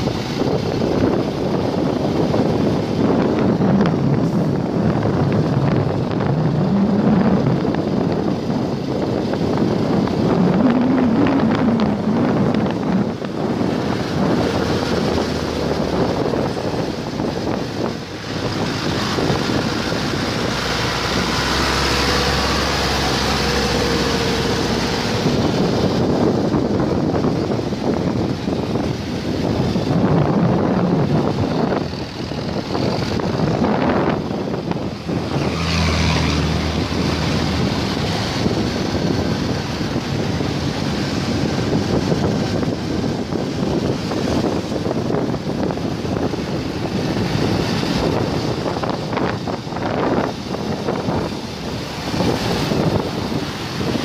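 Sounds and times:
passing traffic engines: 0:00.0 - 0:54.0
vehicle road noise: 0:00.0 - 0:54.0
wind rushing over microphone: 0:00.0 - 0:54.0.

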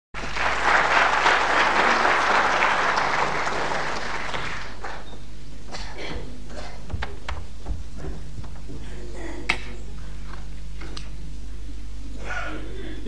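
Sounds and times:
audience applauding: 0:00.2 - 0:05.1
faint knocks: 0:06.5 - 0:08.9.

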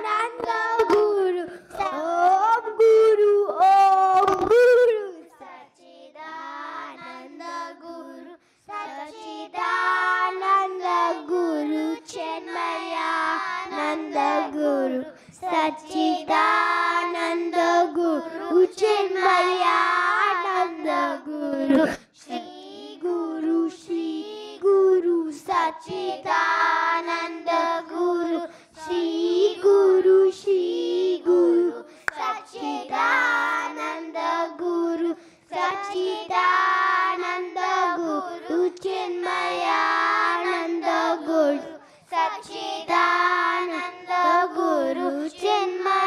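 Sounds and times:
children singing devotional song: 0:00.0 - 0:46.0.

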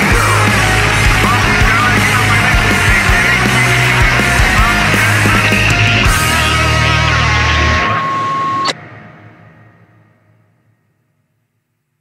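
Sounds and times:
heavy rock band playing: 0:00.0 - 0:08.7.

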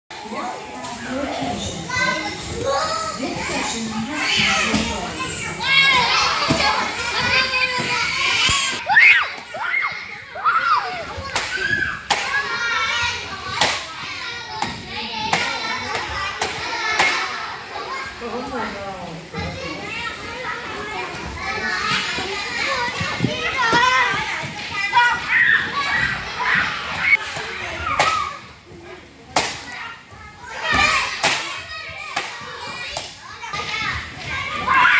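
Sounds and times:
children playing and calling out: 0:00.1 - 0:34.9.

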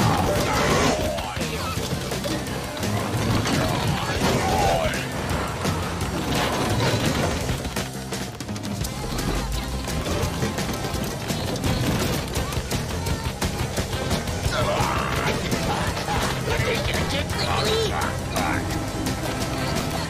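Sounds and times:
high wordless character voices: 0:00.0 - 0:05.9, 0:08.8 - 0:20.0
cartoon background music: 0:00.0 - 0:20.0.

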